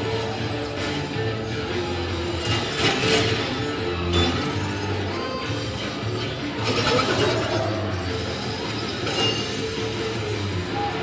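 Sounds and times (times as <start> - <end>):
metallic clanks and crashes: 2.1 - 10.6.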